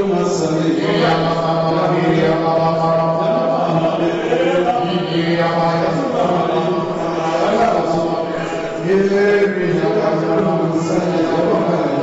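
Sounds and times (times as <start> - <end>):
man chanting a prayer: 0.0 - 12.0.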